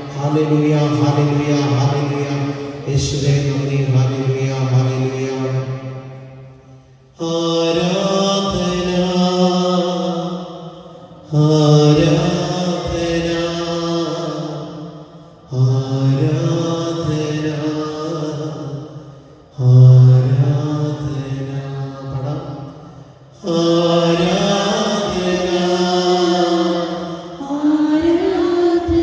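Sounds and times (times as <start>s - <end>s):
man chanting through a microphone: 0.0s - 29.0s.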